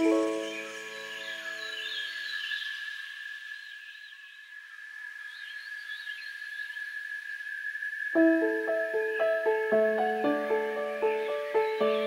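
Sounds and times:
birds chirping: 0:00.0 - 0:03.0, 0:08.2 - 0:12.0.

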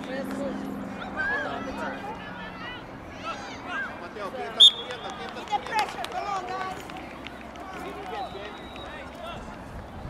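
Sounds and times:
referee's whistle blast: 0:04.6 - 0:05.0.

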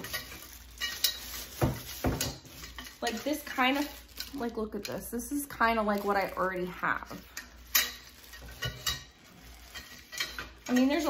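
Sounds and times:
plastic wrapping rustling: 0:00.0 - 0:11.0
metal tubes clinking: 0:07.1 - 0:11.0.

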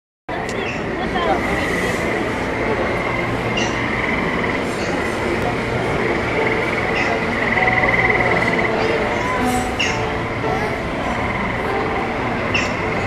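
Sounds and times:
dense wash of noise: 0:00.3 - 0:13.0
murmur of voices: 0:00.3 - 0:13.0.

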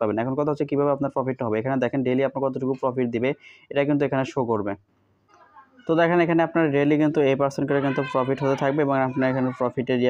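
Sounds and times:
man talking: 0:00.0 - 0:04.9, 0:05.8 - 0:10.0.

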